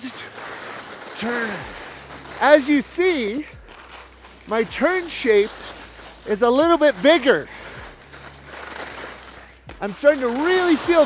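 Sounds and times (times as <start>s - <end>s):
skis sliding over snow: 0.0s - 11.0s
person speaking: 1.1s - 8.5s, 9.5s - 11.0s.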